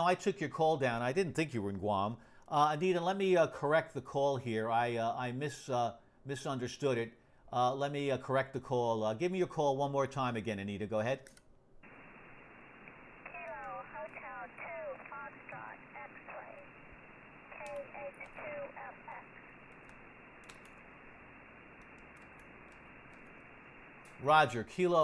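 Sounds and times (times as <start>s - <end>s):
radio band hiss: 11.8s - 25.0s
weak radio voice: 12.9s - 19.8s
keyboard clicks: 19.8s - 20.8s.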